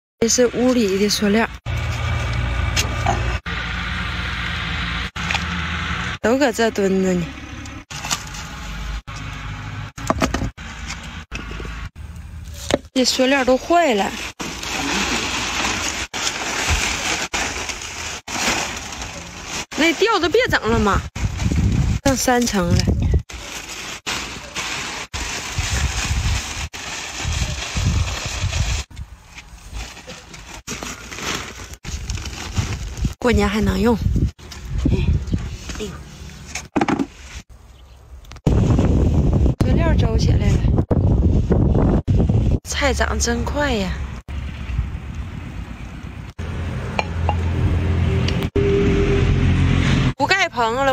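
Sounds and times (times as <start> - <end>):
plastic sheeting rustling: 13.8 - 22.6, 23.2 - 33.2
wind buffeting microphone: 20.5 - 23.3, 25.5 - 29.2, 31.8 - 35.6, 38.4 - 42.7.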